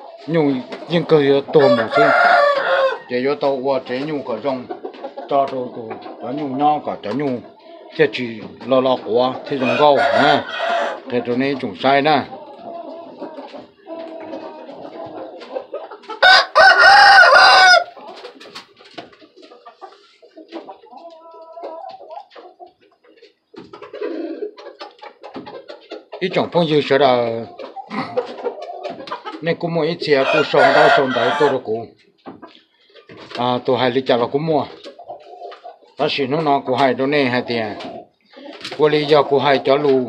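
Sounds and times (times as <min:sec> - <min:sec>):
man talking: 0:00.3 - 0:02.4, 0:03.1 - 0:04.7, 0:05.3 - 0:12.4, 0:26.2 - 0:28.2, 0:29.4 - 0:31.9, 0:33.4 - 0:34.8, 0:36.0 - 0:37.9, 0:38.7 - 0:40.0
rooster crowing: 0:01.6 - 0:03.2, 0:09.6 - 0:11.0, 0:16.2 - 0:18.0, 0:30.2 - 0:31.6.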